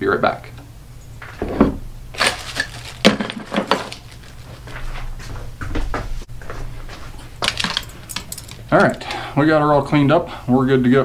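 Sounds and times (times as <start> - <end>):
loose metal parts rattling: 2.1 - 5.0, 7.2 - 9.2.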